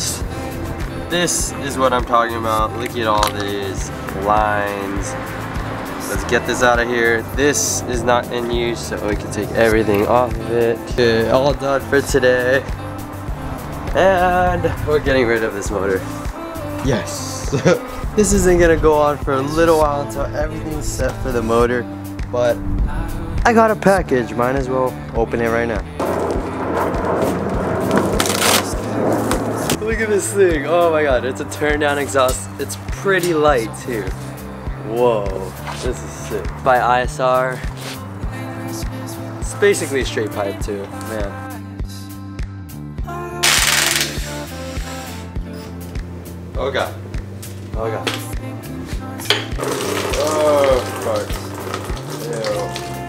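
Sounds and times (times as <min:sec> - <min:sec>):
music with beat and bass: 0:05.4 - 0:24.2.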